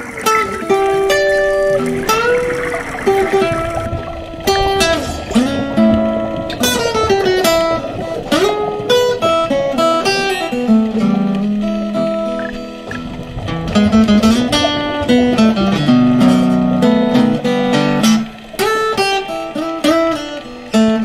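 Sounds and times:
guitar playing instrumental: 0.0 - 21.0.

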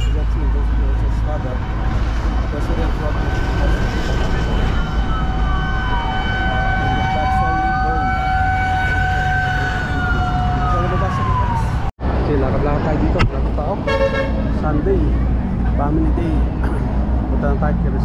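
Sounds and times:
low rumble of road traffic: 0.0 - 18.0
emergency siren wailing: 0.5 - 11.9.

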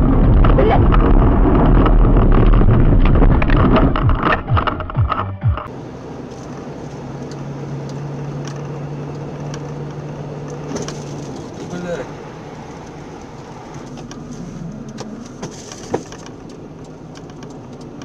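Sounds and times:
vehicle engine and road noise: 0.0 - 18.0.

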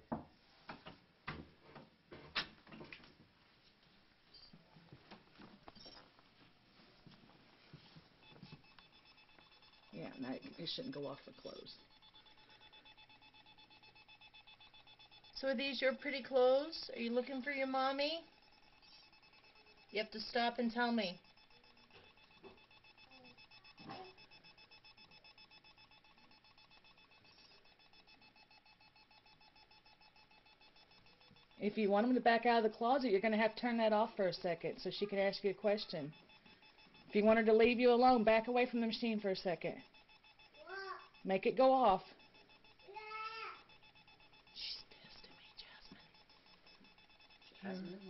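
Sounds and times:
faint high electronic beep: 4.3 - 4.6, 5.7 - 6.1, 8.2 - 34.3, 34.9 - 48.0.

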